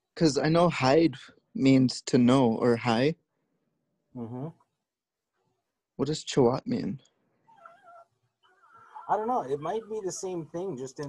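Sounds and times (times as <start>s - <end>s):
faint murmur: 8.7s - 11.0s.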